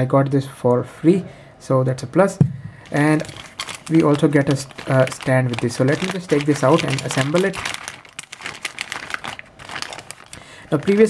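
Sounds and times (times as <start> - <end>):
plastic bag crinkling: 2.8 - 11.0.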